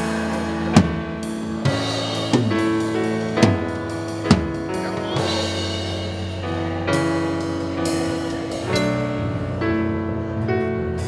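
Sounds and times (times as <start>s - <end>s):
drum kit hits: 0.0s - 9.1s
held keyboard chords: 0.0s - 11.0s.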